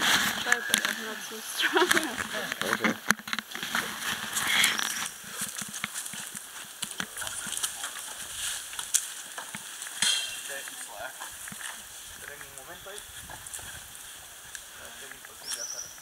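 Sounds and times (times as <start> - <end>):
bamboo crackling and rustling: 0.0 - 16.0
bamboo snapping: 1.8 - 11.8.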